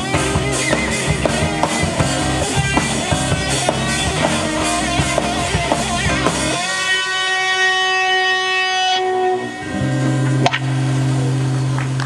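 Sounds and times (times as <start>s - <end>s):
band chord with electric guitar: 0.0s - 12.0s.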